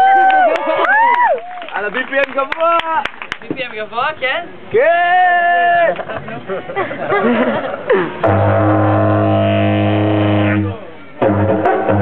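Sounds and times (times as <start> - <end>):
didgeridoo drone: 8.2 - 12.0
voice calls through didgeridoo: 8.2 - 12.0.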